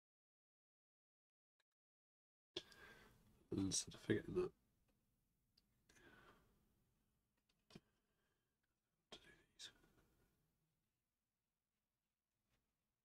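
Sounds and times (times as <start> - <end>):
faint breathy sounds: 2.6 - 3.4, 5.9 - 6.6.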